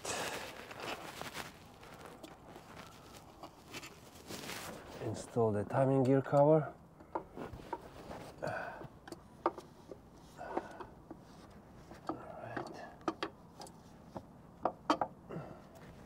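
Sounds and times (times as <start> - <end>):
rustling: 0.0 - 5.4
light metal clicks and knocks: 8.8 - 11.2, 12.0 - 15.2.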